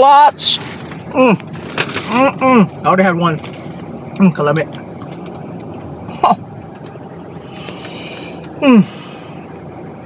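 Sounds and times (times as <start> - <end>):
low hum inside car: 0.0 - 10.0.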